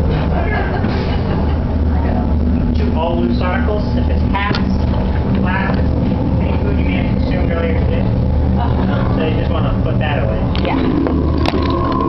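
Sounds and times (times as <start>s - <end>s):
muffled voices: 0.0s - 12.0s
steady low rumble: 0.0s - 12.0s.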